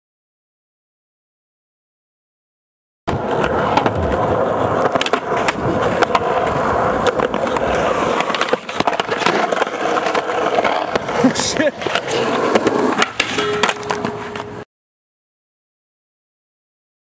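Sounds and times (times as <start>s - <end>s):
skateboard clicks and knocks: 3.1s - 14.6s
skateboard wheels rolling on concrete: 3.1s - 14.6s.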